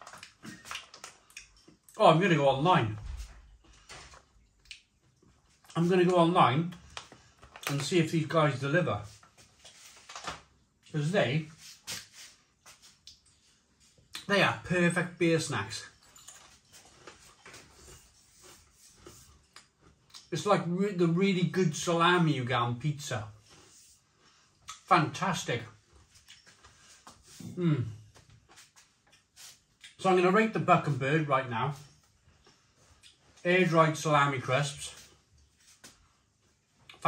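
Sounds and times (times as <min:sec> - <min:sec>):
mouth chewing crunchy food: 0:00.0 - 0:02.0, 0:03.7 - 0:05.9.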